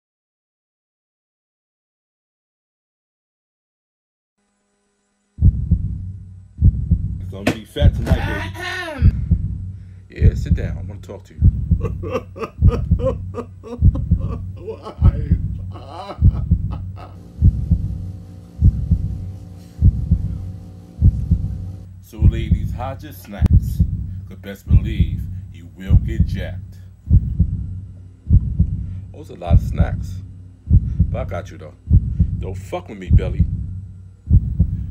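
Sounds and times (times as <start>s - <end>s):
low droning tone: 5.3s - 34.9s
low steady hum: 5.3s - 34.9s
deep bass thumps: 5.4s - 34.9s.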